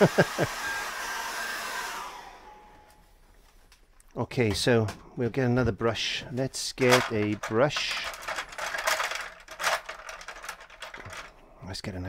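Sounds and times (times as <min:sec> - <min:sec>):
hairdryer blowing: 0:00.0 - 0:03.0.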